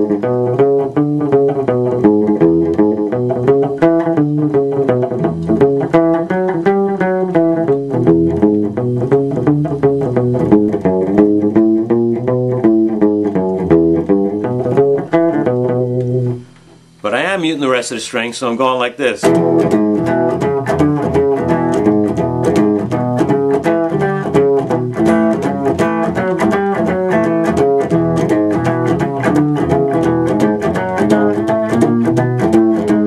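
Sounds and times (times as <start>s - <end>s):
electric guitar blues pattern: 0.0s - 33.0s.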